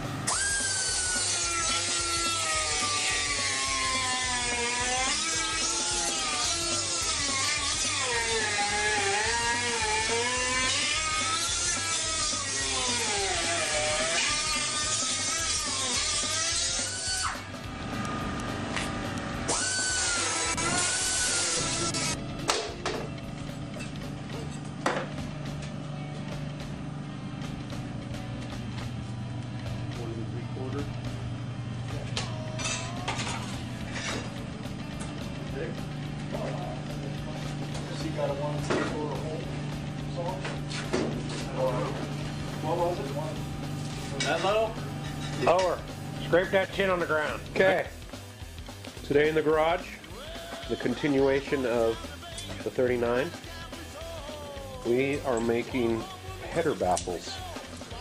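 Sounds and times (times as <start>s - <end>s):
power tool working metal: 0.0s - 26.7s, 30.6s - 56.0s
low hum: 21.6s - 48.5s.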